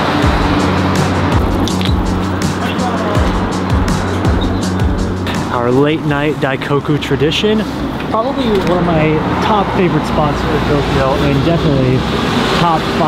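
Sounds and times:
background music: 0.0 - 13.0
street traffic noise: 0.0 - 13.0
man speaking: 2.5 - 3.4, 5.3 - 13.0.

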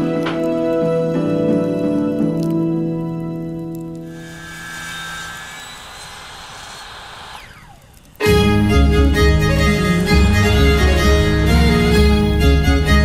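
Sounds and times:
background music: 0.0 - 4.1, 8.2 - 13.0
power tool motor winding down: 4.1 - 10.8
loud string music: 8.2 - 13.0.

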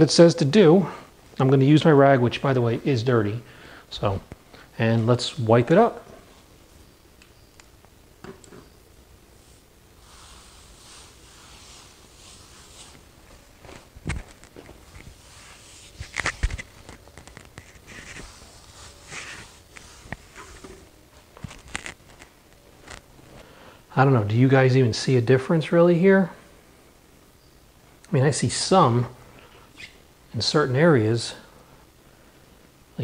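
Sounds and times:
cloth rag rubbing tile: 9.4 - 13.9, 14.8 - 16.8, 17.6 - 20.9.

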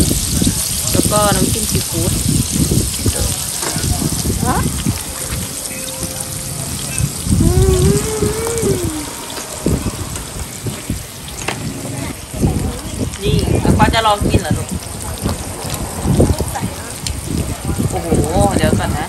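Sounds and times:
grill sizzling: 0.0 - 19.0
woman humming mmm: 7.3 - 9.3.

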